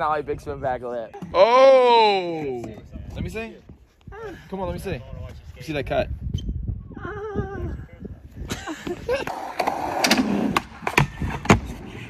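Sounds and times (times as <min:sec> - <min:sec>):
skateboard wheels rolling: 0:09.2 - 0:12.0.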